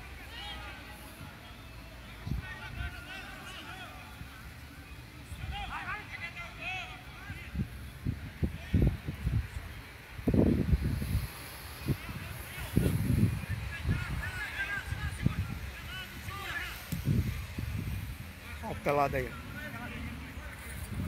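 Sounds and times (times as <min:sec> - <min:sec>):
distant footballers shouting: 0:00.0 - 0:09.8, 0:11.8 - 0:20.9.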